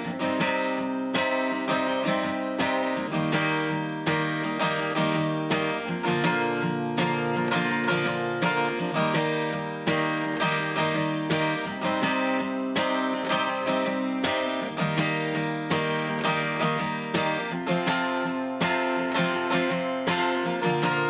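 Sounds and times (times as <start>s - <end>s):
acoustic guitar strumming chords: 0.0s - 21.0s.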